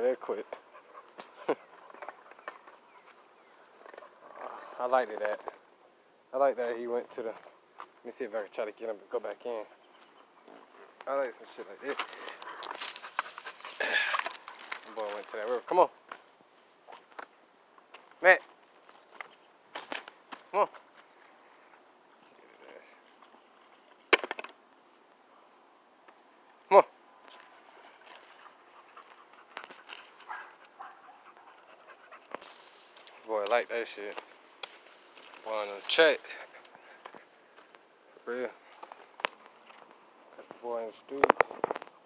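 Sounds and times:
footsteps crunching on gravel: 10.0s - 17.2s, 27.3s - 31.0s, 32.3s - 37.8s.

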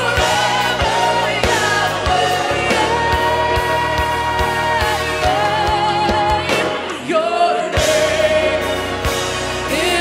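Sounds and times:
bass line: 0.0s - 7.0s
band playing: 0.0s - 10.0s
woman singing lead: 0.0s - 10.0s.

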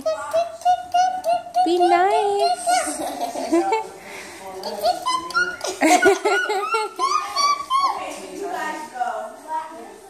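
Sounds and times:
children's voices: 0.0s - 3.6s, 4.7s - 10.0s
children laughing: 0.0s - 4.0s, 4.7s - 8.3s.

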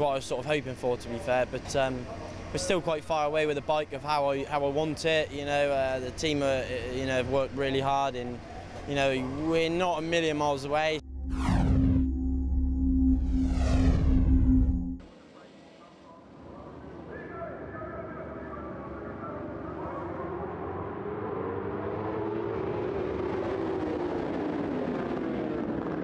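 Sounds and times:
sweeping whoosh effect: 11.0s - 15.2s
low drone: 11.0s - 16.6s.

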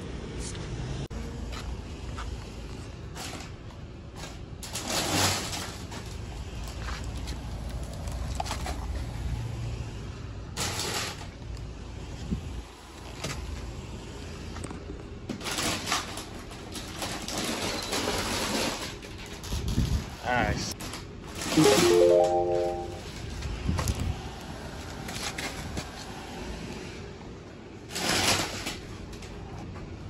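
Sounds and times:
rustling and scraping of chip bags: 2.8s - 9.2s, 15.3s - 20.0s, 27.9s - 29.3s.

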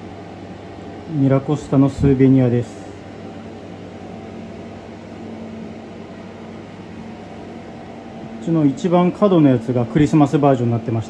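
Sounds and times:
indoor machine hum: 0.0s - 11.0s.

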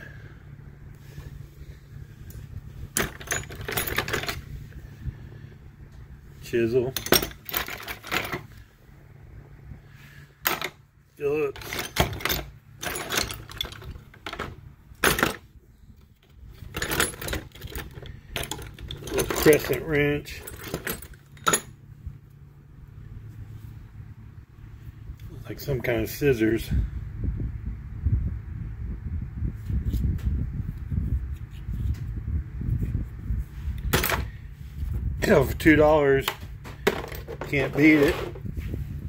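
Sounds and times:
steady low hum: 0.0s - 39.0s
metal hand tools clattering: 3.0s - 4.4s, 6.9s - 8.4s, 11.5s - 15.4s, 16.6s - 21.8s.

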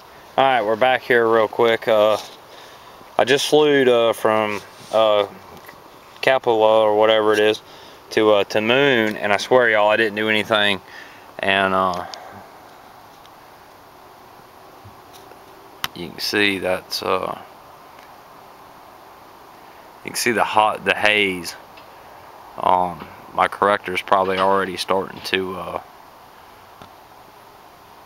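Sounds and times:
faint background hiss: 0.0s - 28.0s.

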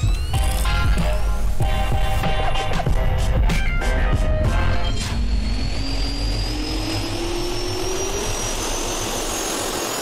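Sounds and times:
jet turbine whine rising: 0.0s - 10.0s.

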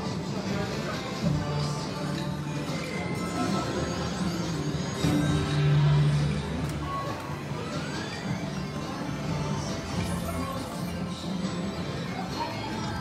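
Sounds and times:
casino crowd din: 0.0s - 13.0s
slot machine music and jingles: 1.6s - 12.1s.

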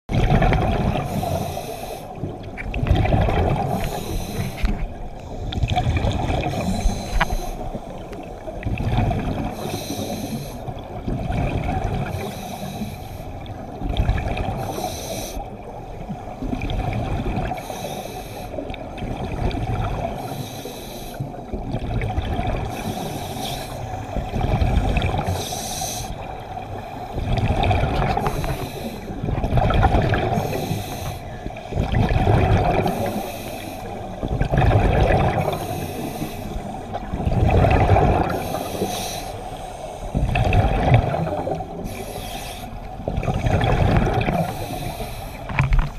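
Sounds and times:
exhaled air bubbling: 0.1s - 45.9s
scuba regulator inhalation hiss: 1.1s - 2.1s, 3.7s - 5.5s, 6.5s - 7.7s, 9.6s - 10.6s, 12.1s - 13.3s, 14.6s - 15.4s, 17.6s - 18.6s, 20.2s - 21.3s, 22.7s - 24.2s, 25.2s - 26.2s, 28.2s - 29.2s, 30.4s - 31.8s, 32.8s - 34.2s, 35.5s - 36.9s, 38.3s - 40.2s, 41.8s - 42.9s, 44.4s - 45.5s.

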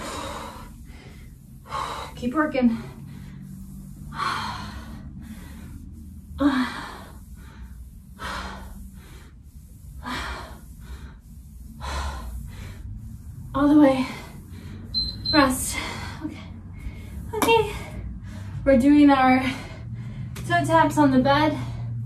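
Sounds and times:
woman breathing hard: 0.0s - 15.0s, 15.6s - 18.7s, 19.4s - 20.4s.

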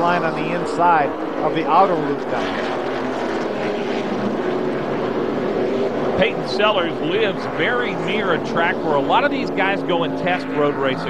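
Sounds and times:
race car engines at speed: 0.0s - 11.0s.

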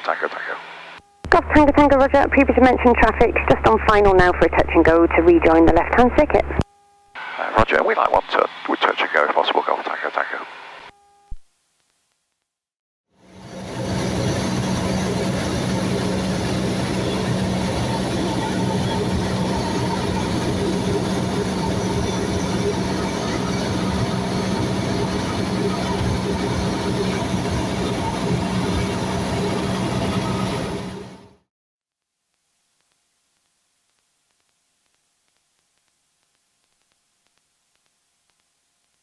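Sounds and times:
airplane engine hum in cabin: 13.3s - 31.4s.

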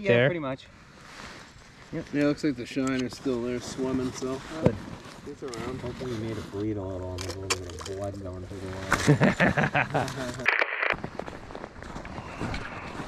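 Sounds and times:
sharp crunching clicks: 10.4s - 11.0s.

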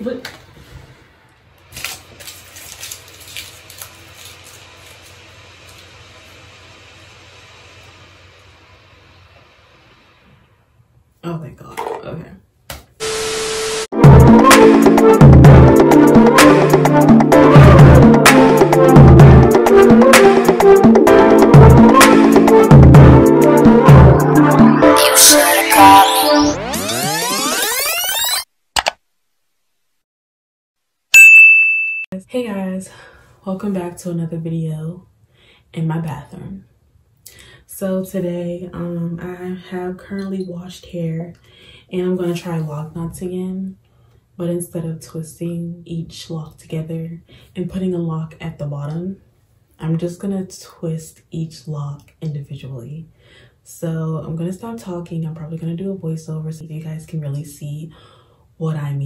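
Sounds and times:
bright bell ding: 31.1s - 32.2s.

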